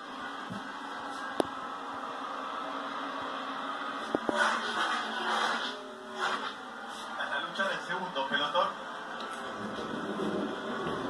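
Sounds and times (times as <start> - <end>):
race cars rushing on track: 8.7 - 11.0.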